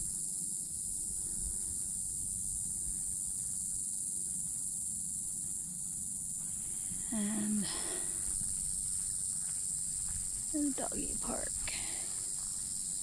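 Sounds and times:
insects buzzing: 0.0s - 13.0s.

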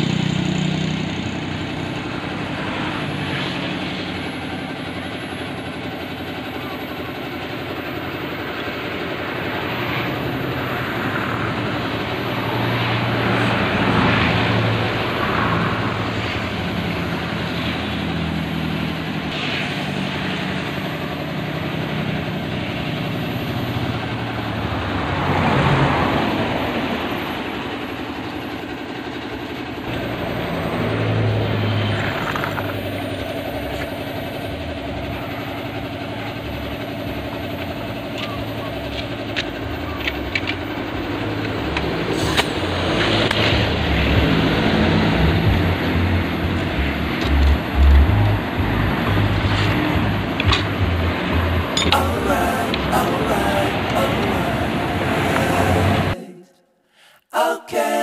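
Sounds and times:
engine humming: 0.0s - 56.3s.

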